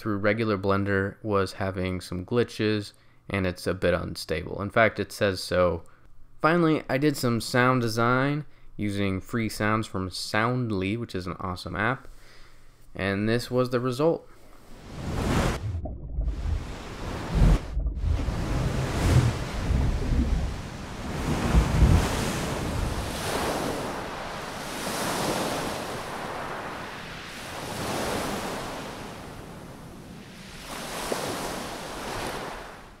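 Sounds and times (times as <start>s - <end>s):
ocean waves breaking: 14.6s - 33.0s
rushing surf swells: 14.7s - 33.0s.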